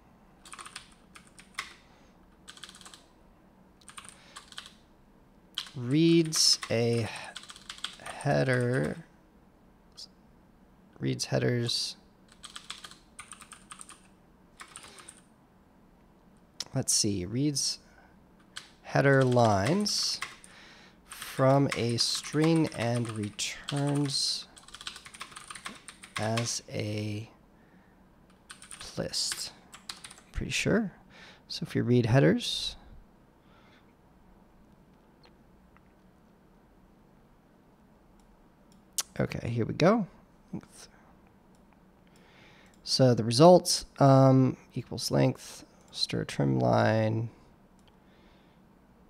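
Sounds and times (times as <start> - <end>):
typing on computer keyboard: 0.4 - 1.8, 2.5 - 3.1, 3.8 - 4.8, 5.6 - 9.0, 12.3 - 15.3, 18.4 - 20.5, 21.1 - 26.6, 28.4 - 28.9, 29.7 - 30.3
faint clicks: 47.8 - 48.0.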